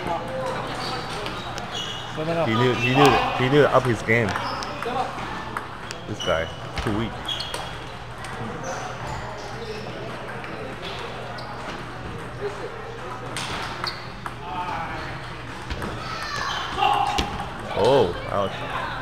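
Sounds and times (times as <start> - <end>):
chatter of many voices: 0.0 - 19.0
table tennis balls clicking: 3.0 - 6.1.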